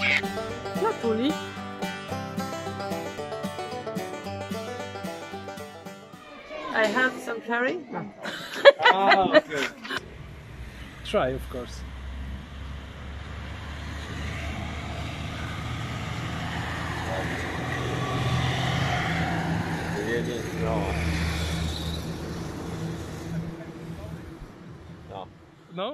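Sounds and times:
vehicle engine passing by: 10.0s - 25.7s.

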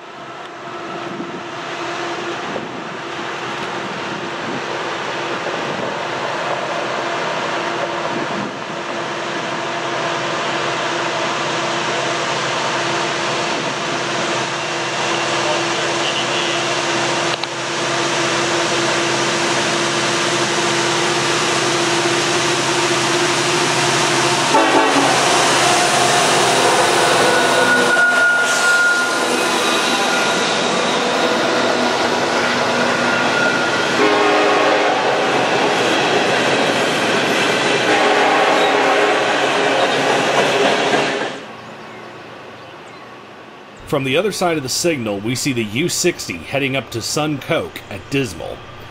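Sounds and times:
diesel locomotives working hard: 0.0s - 48.9s.

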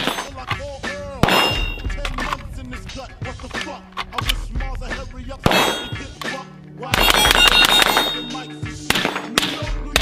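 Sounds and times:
metallic clang of steel target: 0.0s - 0.4s, 1.2s - 2.0s, 5.5s - 6.1s, 7.0s - 9.6s
rifle shots: 1.2s - 2.3s, 5.4s - 6.1s, 6.9s - 10.0s.

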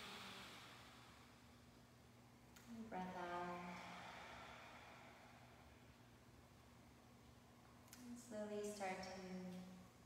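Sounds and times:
faint breathy hiss: 0.0s - 6.6s.

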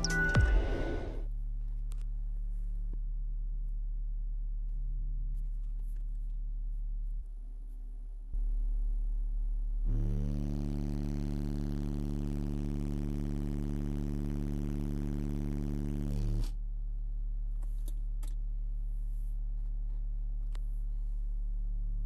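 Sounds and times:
subwoofer low test tone: 0.0s - 22.0s
harsh distorted buzz: 9.9s - 16.6s.

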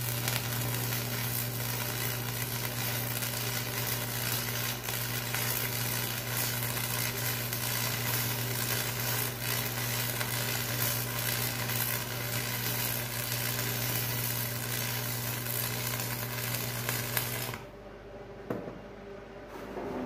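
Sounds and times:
arc welding crackling sizzle: 0.0s - 17.7s.

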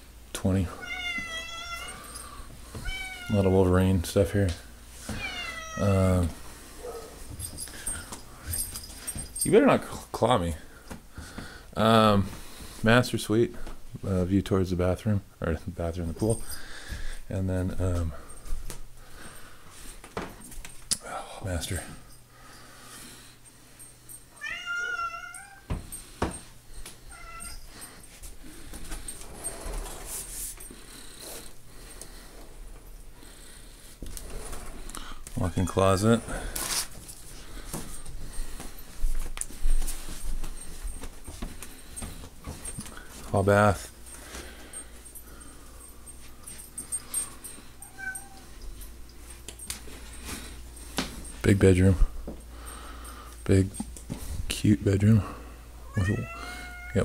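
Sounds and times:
cat meowing: 0.8s - 2.0s, 2.8s - 3.4s, 5.1s - 5.9s, 24.4s - 25.7s, 27.1s - 27.6s, 47.8s - 48.5s, 55.8s - 57.0s
footsteps: 6.0s - 10.0s, 16.1s - 20.9s, 25.7s - 33.0s, 33.9s - 47.6s, 48.4s - 52.5s
soft shuffling: 25.7s - 33.0s, 33.8s - 55.4s.

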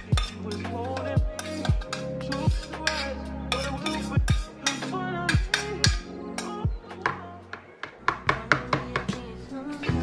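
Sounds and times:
metal spoon scraping steel pot: 0.0s - 6.6s
background music: 0.0s - 10.0s.

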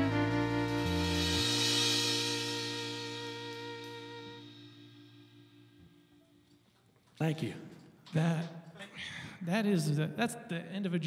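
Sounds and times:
band chord on guitar and strings: 0.0s - 5.8s
cymbal wash: 0.0s - 6.6s.

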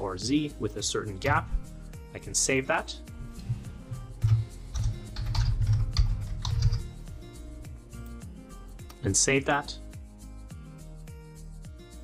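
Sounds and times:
typing on computer keyboard: 4.2s - 6.9s.

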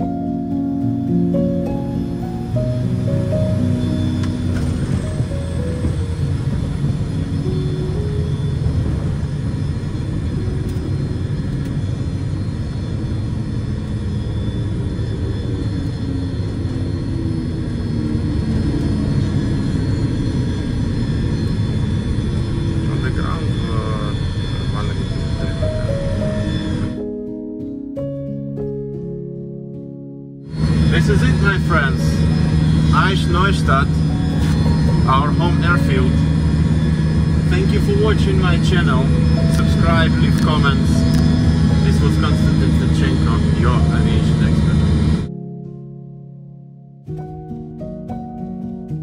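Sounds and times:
background music: 0.0s - 12.2s, 22.9s - 49.0s
aircraft piston engines and propellers: 0.0s - 27.8s, 30.4s - 45.3s.

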